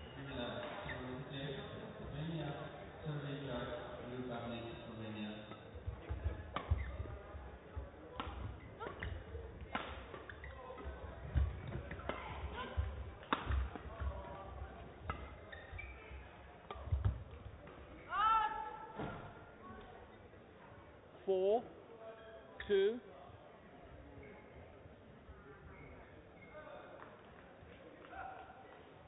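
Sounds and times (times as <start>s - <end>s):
rackets hitting shuttlecock: 5.9s - 7.2s, 8.1s - 14.4s.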